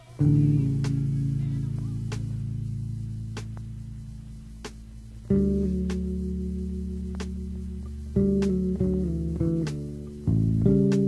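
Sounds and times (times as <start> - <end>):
guitar and bass chord ringing: 0.2 - 4.6, 5.2 - 11.0.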